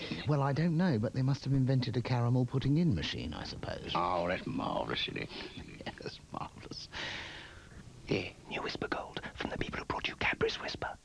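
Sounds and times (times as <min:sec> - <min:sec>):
breathy hiss: 0:05.2 - 0:05.8, 0:06.8 - 0:09.5
person whispering: 0:08.1 - 0:11.0.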